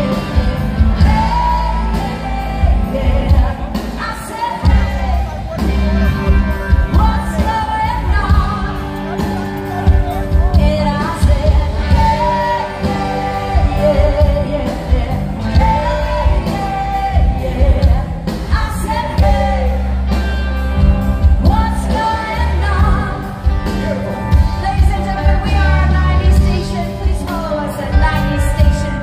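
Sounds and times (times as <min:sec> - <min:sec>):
heavy bass: 0:00.0 - 0:29.0
live pop-rock band: 0:00.0 - 0:29.0
person singing: 0:00.0 - 0:29.0
steady drum beat: 0:00.0 - 0:29.0.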